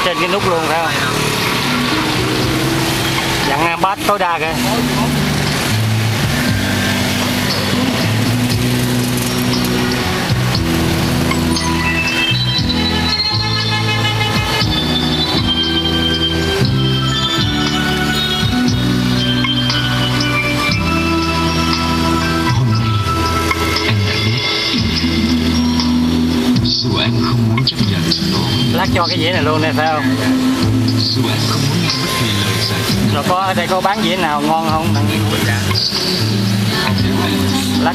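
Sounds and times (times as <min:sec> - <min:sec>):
loud bass music in car: 0:00.0 - 0:37.9.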